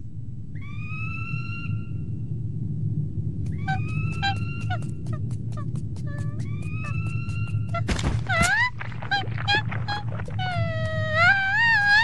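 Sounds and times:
cartoon dog wavering whine: 3.5s - 12.0s
cartoon dog yips: 7.7s - 12.0s.

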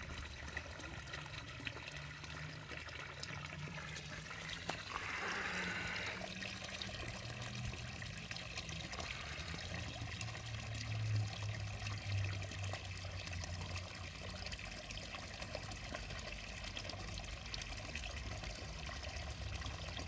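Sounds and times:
water trickling in pond: 0.0s - 20.0s
rush of water: 1.4s - 13.8s.

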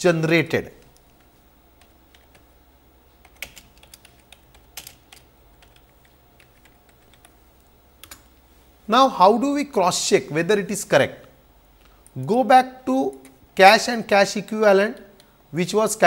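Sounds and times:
computer keyboard typing: 0.8s - 2.5s, 3.2s - 7.4s, 8.0s - 8.3s.

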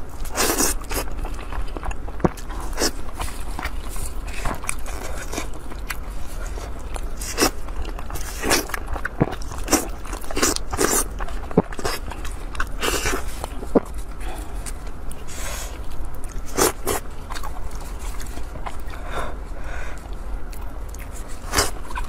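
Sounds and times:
biting and chewing meat: 0.0s - 22.0s
low steady hum: 0.0s - 22.0s.

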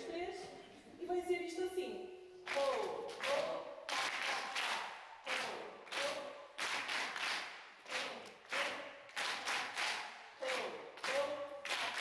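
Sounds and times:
crowd clapping in rhythm: 2.4s - 12.0s.

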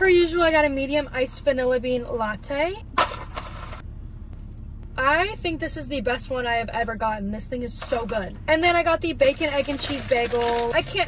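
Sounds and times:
low steady hum: 0.0s - 11.0s
ice cubes rattling in cup: 9.2s - 11.0s.

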